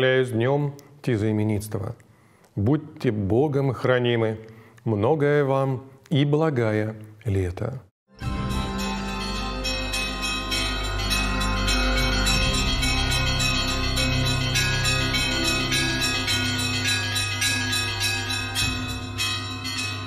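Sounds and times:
church bells ringing: 8.2s - 20.0s
steady low tone: 8.2s - 20.0s.

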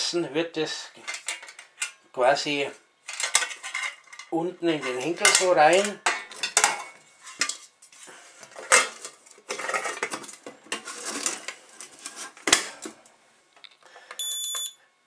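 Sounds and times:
metal mess kit clinking and scraping: 1.0s - 1.9s, 3.1s - 7.7s, 8.4s - 12.6s.

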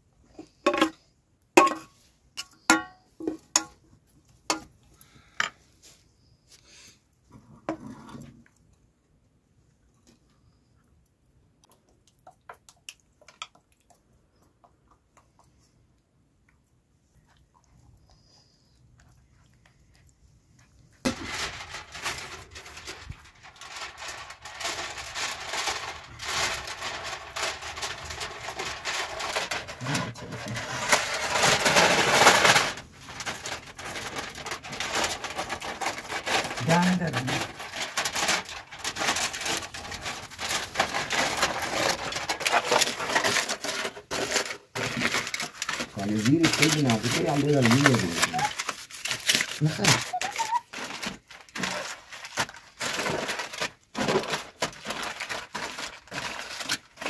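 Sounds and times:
aluminium foil crinkling: 20.7s - 57.0s.

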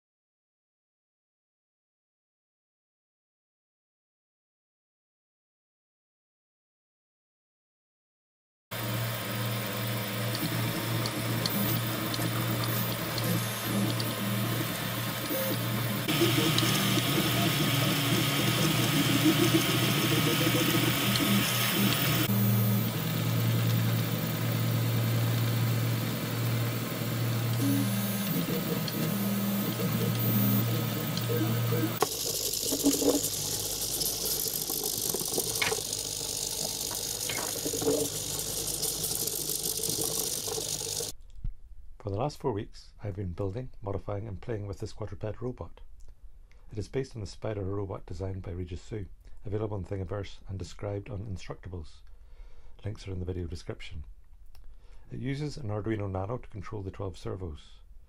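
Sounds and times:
stepper motors humming and whining: 8.8s - 41.1s.

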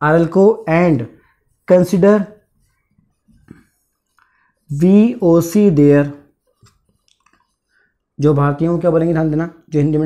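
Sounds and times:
man speaking: 0.0s - 2.4s, 4.7s - 6.3s, 8.2s - 10.0s
marker scratching on whiteboard: 0.0s - 10.0s.

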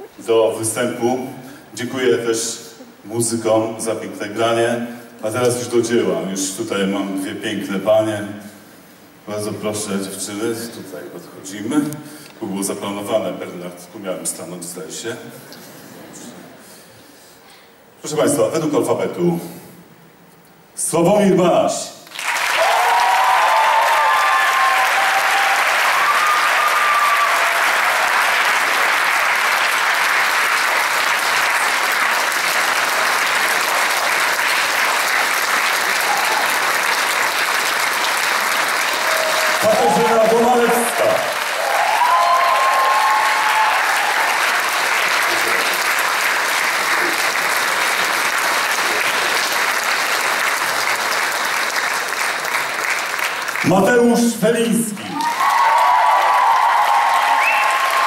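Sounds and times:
audience applauding: 0.0s - 0.2s, 22.0s - 53.9s, 54.9s - 58.0s.

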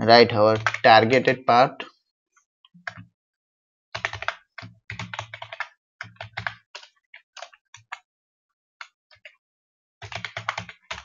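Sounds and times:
computer keyboard typing: 0.5s - 1.0s, 4.0s - 8.0s, 10.0s - 11.0s.

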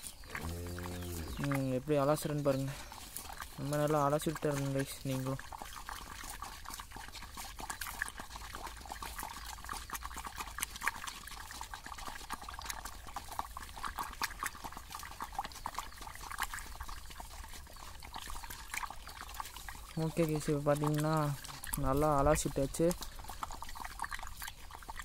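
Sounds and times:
stick stirring liquid in metal basin: 0.0s - 25.0s.

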